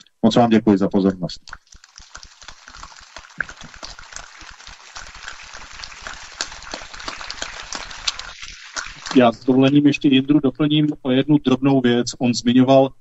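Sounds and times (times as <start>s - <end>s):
audience applauding: 1.8s - 9.5s.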